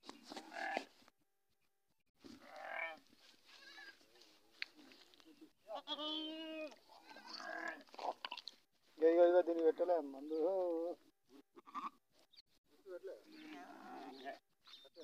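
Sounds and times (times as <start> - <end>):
sheep bleating: 2.4 - 4.0, 5.7 - 7.9.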